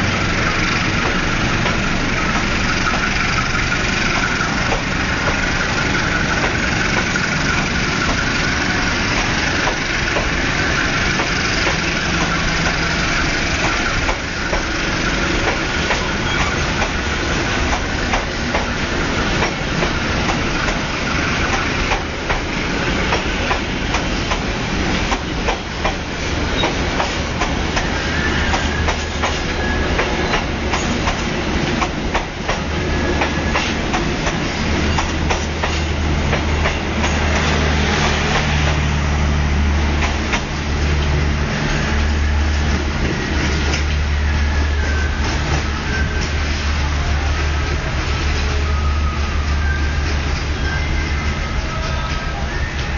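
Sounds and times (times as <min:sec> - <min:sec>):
train wheels clattering: 0:00.0 - 0:39.0, 0:39.7 - 0:46.6
low train drone: 0:00.0 - 0:52.9.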